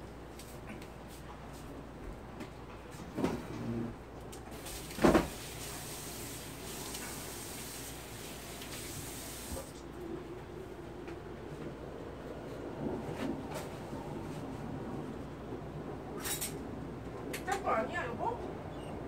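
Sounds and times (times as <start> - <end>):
steady hiss: 4.5 - 9.8.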